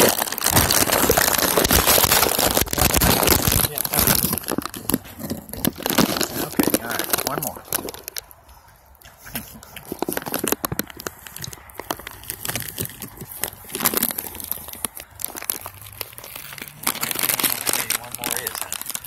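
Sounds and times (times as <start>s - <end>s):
bag crinkling and rustling: 0.0s - 19.0s
goats crunching peanuts: 0.0s - 19.0s.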